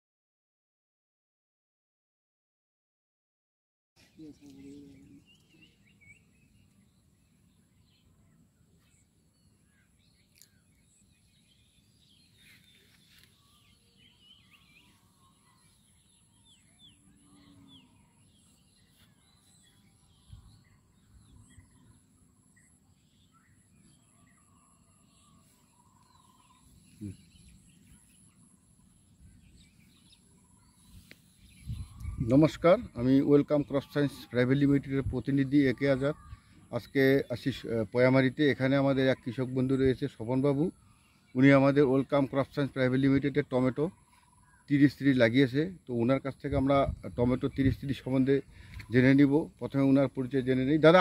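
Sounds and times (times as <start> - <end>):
faint bird chirps: 4.0 - 51.0.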